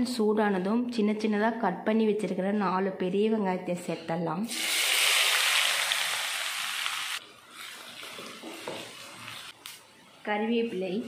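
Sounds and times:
shallots sizzling in hot oil: 4.5 - 9.6.

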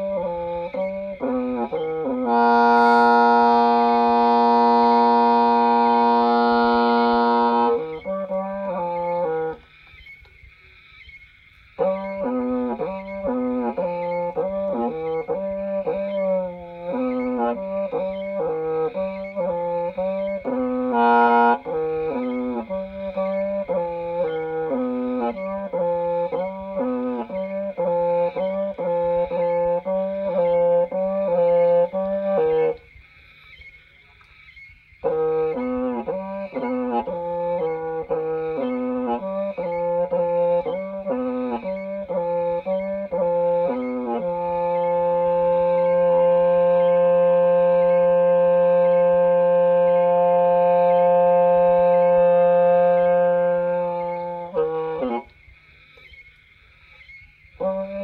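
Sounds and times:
bamboo reed pipe melody: 0.0 - 58.0.

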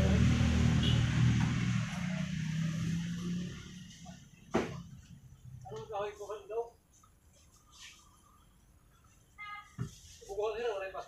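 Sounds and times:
people talking: 10.2 - 11.0.

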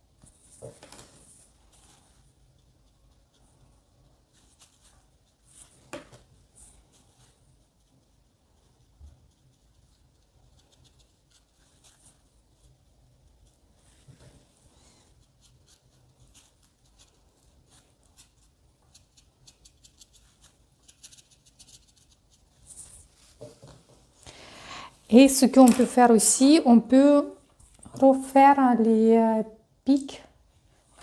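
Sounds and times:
brush scratching on paper: 0.2 - 23.5.

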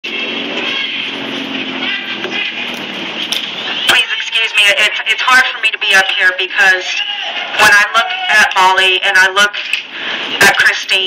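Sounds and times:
passing cars in street traffic: 0.0 - 5.7, 9.6 - 10.6.

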